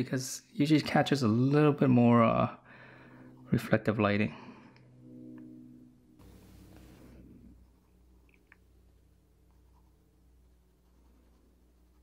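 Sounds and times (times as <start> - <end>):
low hum: 1.2 - 12.0
soft hiss: 6.2 - 10.0.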